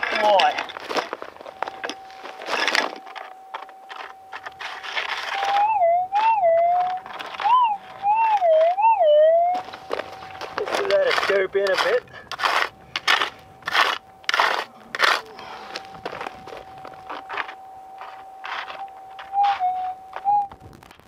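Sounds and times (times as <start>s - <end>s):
scoop scraping gravel: 0.0s - 8.7s, 9.6s - 20.2s
metal detector humming: 0.0s - 20.6s
metal detector warbling tone: 0.0s - 20.6s.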